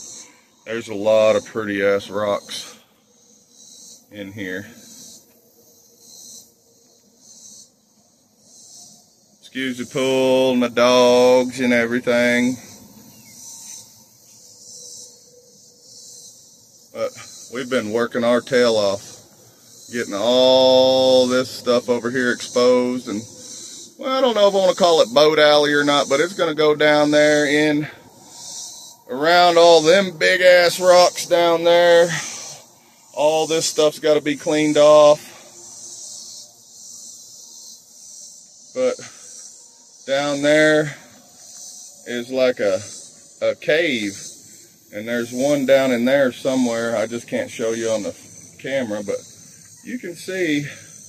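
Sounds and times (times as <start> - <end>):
faint steady hum: 0.0 - 51.0
high-pitched insect chorus: 0.0 - 51.0.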